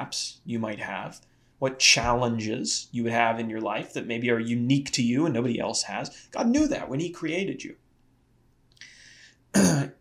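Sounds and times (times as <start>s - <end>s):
man clearing his throat: 9.6s - 10.0s.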